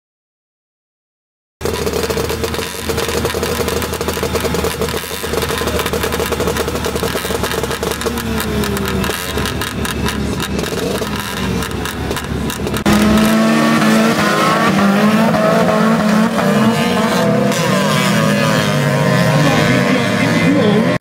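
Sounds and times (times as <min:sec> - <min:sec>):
race car engines idling: 0:01.6 - 0:21.0
race car engines revving: 0:01.6 - 0:21.0.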